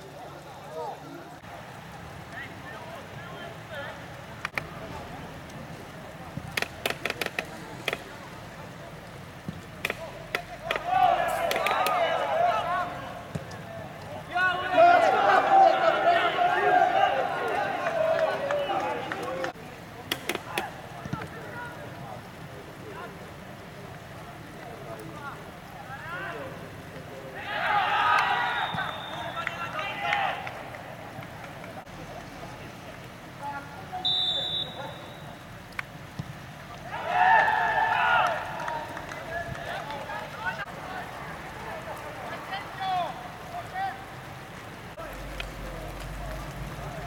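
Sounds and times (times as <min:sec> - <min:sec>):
players shouting: 0:08.7 - 0:19.6, 0:25.1 - 0:31.8, 0:36.7 - 0:44.6
men shouting: 0:10.6 - 0:13.2, 0:14.3 - 0:19.5, 0:27.4 - 0:28.7
referee's whistle blowing: 0:28.2 - 0:29.8, 0:34.0 - 0:35.4.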